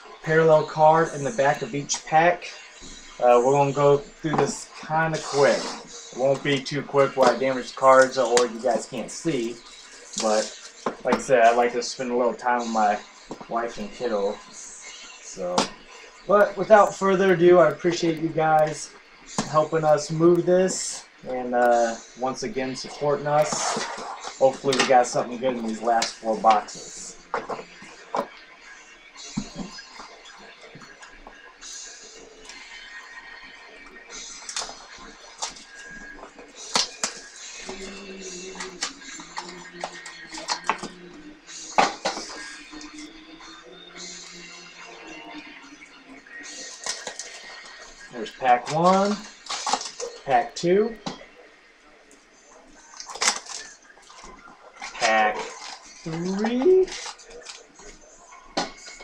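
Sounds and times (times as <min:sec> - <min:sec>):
person speaking: 0:03.2 - 0:09.6, 0:10.2 - 0:14.4, 0:55.0 - 0:57.0.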